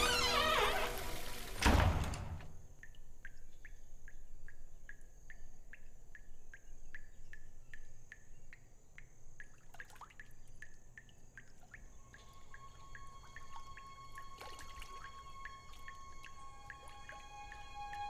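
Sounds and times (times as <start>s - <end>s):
water dripping into bathtub: 2.6s - 18.0s.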